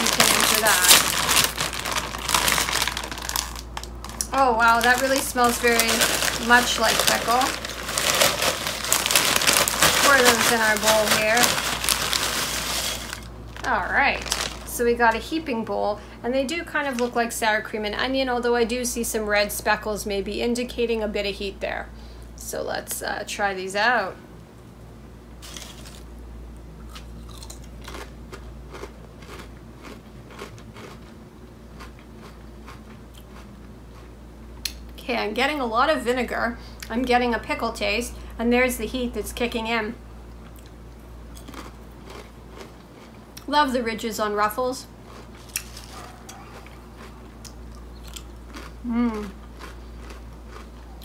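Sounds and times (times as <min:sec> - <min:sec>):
potato chips crunching: 0:00.0 - 0:15.2, 0:25.4 - 0:26.2, 0:26.8 - 0:34.8, 0:40.4 - 0:43.5, 0:45.0 - 0:51.0.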